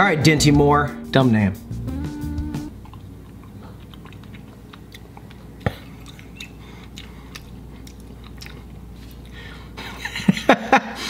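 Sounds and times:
man chewing food: 0:01.9 - 0:10.0
wet mouth clicks: 0:02.8 - 0:08.6.

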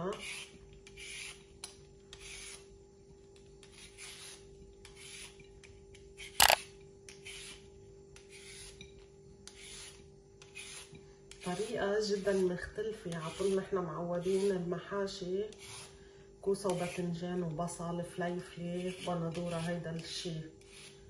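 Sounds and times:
peeler scraping carrot: 0:00.0 - 0:02.7, 0:03.6 - 0:14.7, 0:15.5 - 0:15.9, 0:16.6 - 0:17.1, 0:18.5 - 0:21.0
faint steady hum: 0:00.1 - 0:18.7
sharp click: 0:06.4 - 0:06.6.

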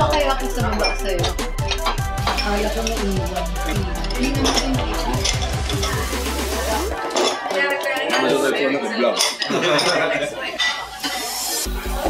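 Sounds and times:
voices talking: 0:00.0 - 0:12.0
dishes and cutlery clinking: 0:00.7 - 0:06.1, 0:07.0 - 0:11.7.

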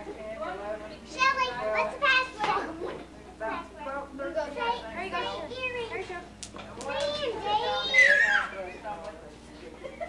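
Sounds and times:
children chattering and calling: 0:00.0 - 0:09.1.

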